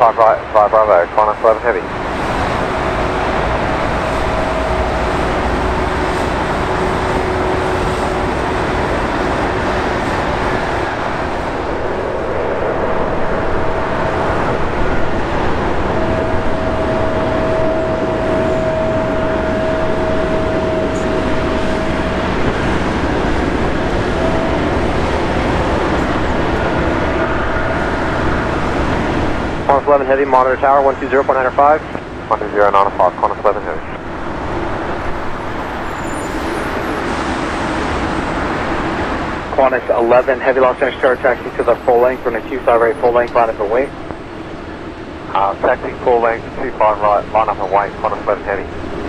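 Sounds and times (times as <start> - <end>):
faint steady tones: 0.0 - 49.0
jet engines taxiing: 0.0 - 49.0.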